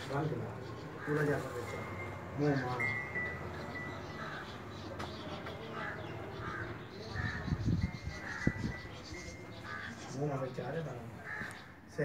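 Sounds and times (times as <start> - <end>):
bird calling: 0.1 - 12.0.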